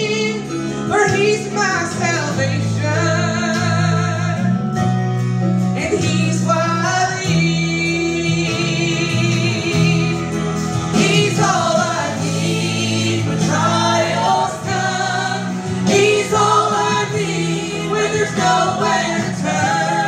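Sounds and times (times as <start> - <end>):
women singing with vibrato: 0.0 - 4.6, 5.8 - 20.0
amplified instrumental accompaniment: 0.0 - 20.0.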